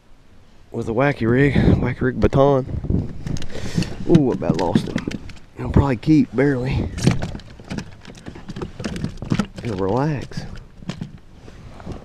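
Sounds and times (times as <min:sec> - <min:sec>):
knocks and taps on plastic kayak: 0:04.1 - 0:05.4.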